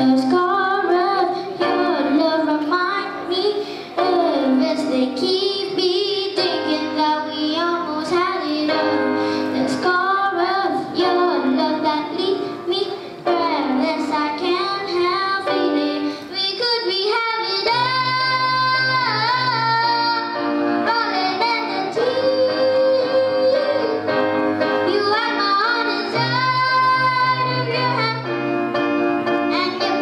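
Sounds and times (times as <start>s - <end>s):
boy singing into a microphone: 0.0s - 28.3s, 29.5s - 30.0s
grand piano: 0.0s - 30.0s.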